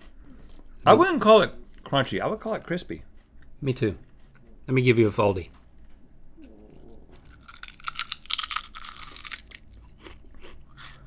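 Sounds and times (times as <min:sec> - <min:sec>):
chewing: 0:06.3 - 0:11.0
potato chip crunching: 0:07.2 - 0:11.0.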